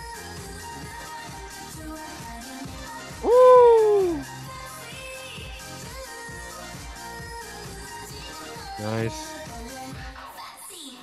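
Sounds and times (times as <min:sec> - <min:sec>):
pop music: 0:00.0 - 0:11.0
man hooting excitedly: 0:03.2 - 0:04.3.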